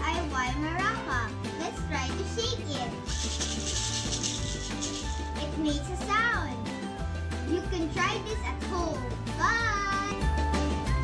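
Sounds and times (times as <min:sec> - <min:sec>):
background music: 0:00.0 - 0:11.0
maraca rattling: 0:03.0 - 0:05.6.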